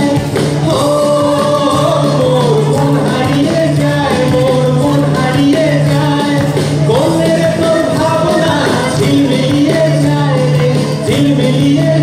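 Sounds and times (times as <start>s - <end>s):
guitars: 0.0s - 12.0s
several voices singing together: 0.2s - 12.0s.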